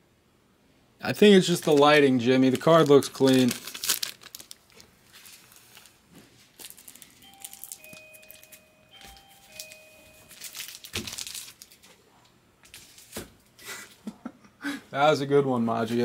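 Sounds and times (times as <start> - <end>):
plastic card sleeves crinkling: 1.4 - 12.0.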